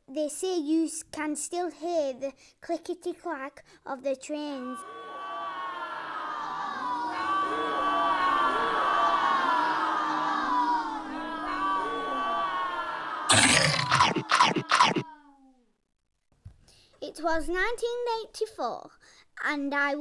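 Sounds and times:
loud short bursts: 13.3 - 15.0.

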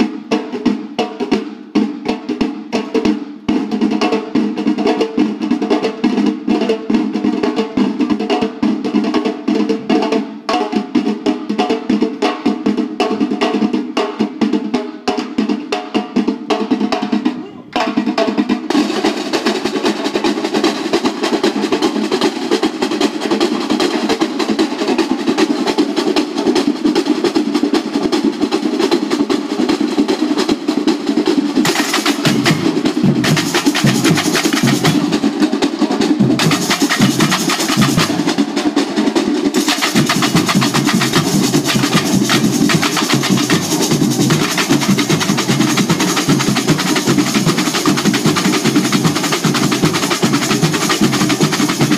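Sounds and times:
samba drum band playing: 0.0 - 51.9
deep bass drum beats: 31.6 - 35.1.

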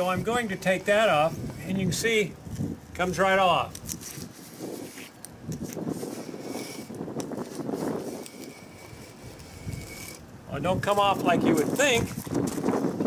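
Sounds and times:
knife blade scraping a wall: 3.8 - 10.2.

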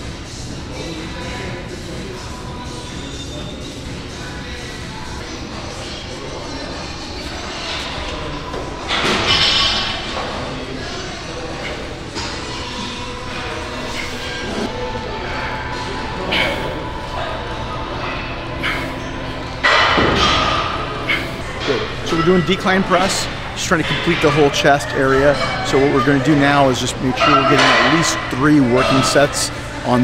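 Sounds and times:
background music: 0.0 - 30.0.

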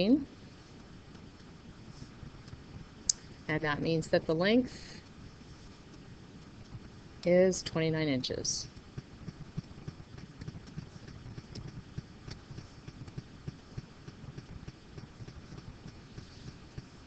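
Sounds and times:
stylus tapping and rubbing: 8.6 - 17.0.

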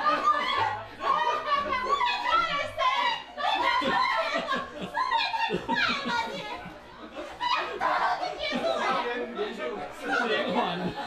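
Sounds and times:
people laughing along: 0.0 - 9.3, 10.0 - 11.0.

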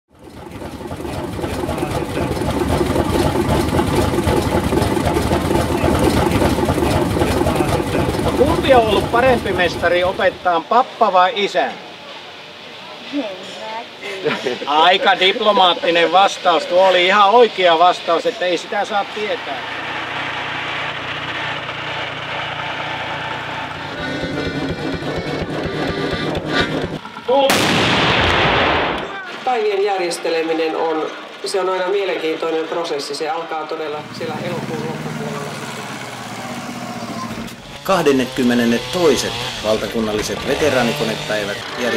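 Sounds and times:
old engines clattering: 0.1 - 10.5, 15.7 - 27.8, 29.0 - 41.9
loud cannon blast: 27.4 - 29.3.

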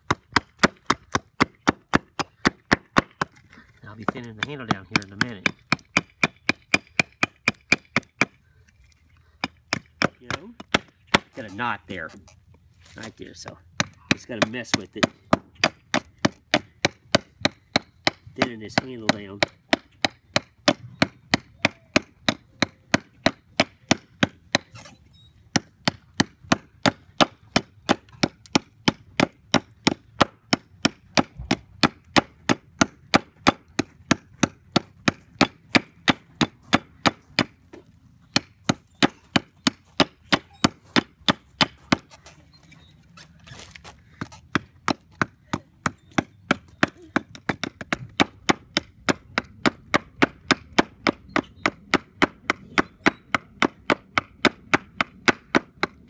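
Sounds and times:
hatchet chopping wood: 0.0 - 8.5, 9.2 - 12.2, 13.0 - 24.9, 25.5 - 42.1, 44.2 - 56.0.

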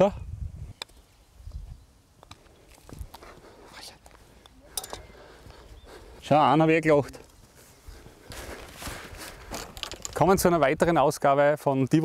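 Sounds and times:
footsteps on grass: 5.0 - 6.4, 7.0 - 9.8.

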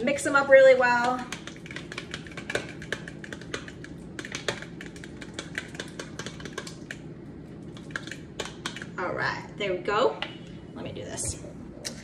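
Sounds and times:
utensil stirring in mixing bowl: 0.0 - 9.0.

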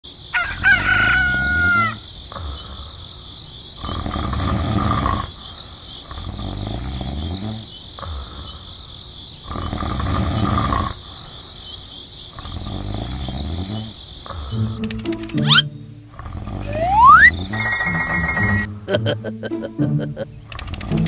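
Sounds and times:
insects chirping: 0.0 - 21.0
rooster crowing: 0.3 - 2.0, 16.7 - 18.4
rough animal calls: 0.3 - 3.1, 15.5 - 21.0.

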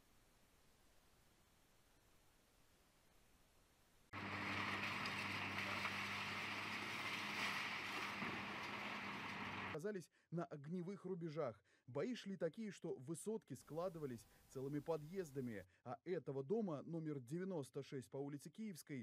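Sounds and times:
faint steady hiss: 0.0 - 9.8, 13.5 - 15.7
excavator diesel engine running: 4.2 - 9.8.

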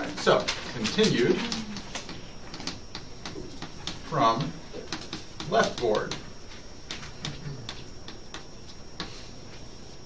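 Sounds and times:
chalk tapping on a blackboard: 6.9 - 9.2.

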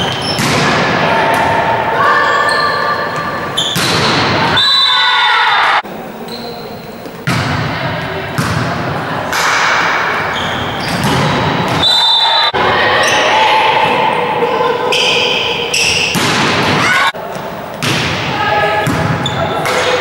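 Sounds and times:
players shouting: 0.0 - 5.8, 9.4 - 17.2
volleyball being struck: 16.1 - 16.9.

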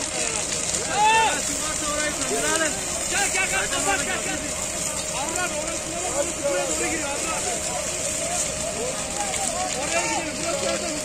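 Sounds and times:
constant hum: 0.0 - 11.0
noisy background: 0.0 - 11.0.

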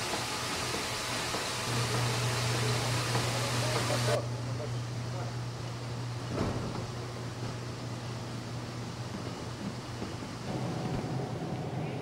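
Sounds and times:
machinery hum and rushing: 0.0 - 12.0.

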